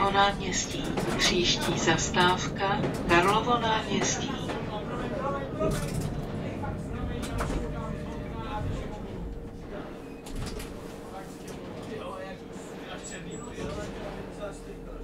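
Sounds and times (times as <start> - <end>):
faint voices: 0.0 - 15.0
tram low rumble: 0.0 - 15.0.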